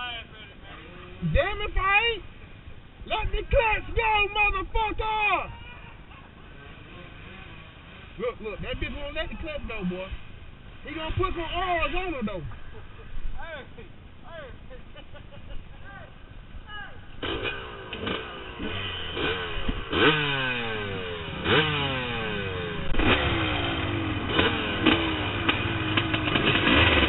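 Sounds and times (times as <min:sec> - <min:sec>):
dirt bike engines idling: 0:00.0 - 0:27.0.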